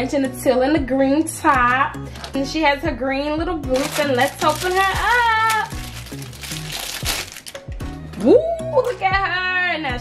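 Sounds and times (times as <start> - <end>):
background music: 0.0 - 10.0
plastic wrapping crinkling: 3.7 - 7.7.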